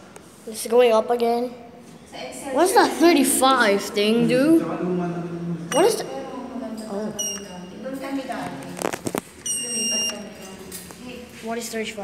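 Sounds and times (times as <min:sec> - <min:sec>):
elevator button beep: 0:05.7 - 0:06.1, 0:07.1 - 0:07.8, 0:09.4 - 0:10.3
button clicks: 0:07.2 - 0:07.5.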